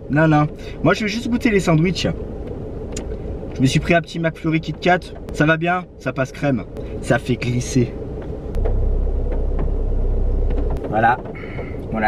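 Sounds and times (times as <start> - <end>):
car engine rumble: 0.0 - 12.0.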